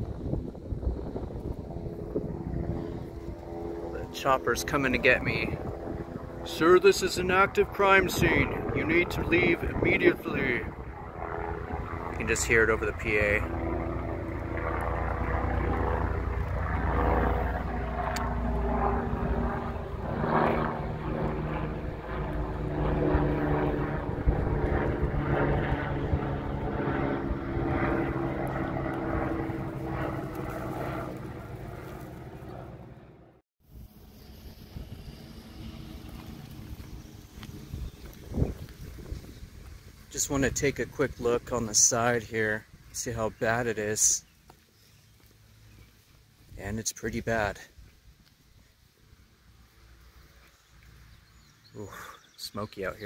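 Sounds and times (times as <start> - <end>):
aircraft engine drone: 0.0 - 53.0.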